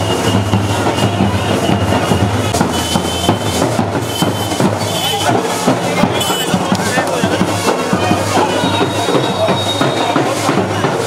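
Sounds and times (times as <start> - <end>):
drum-led procession music: 0.0 - 11.0.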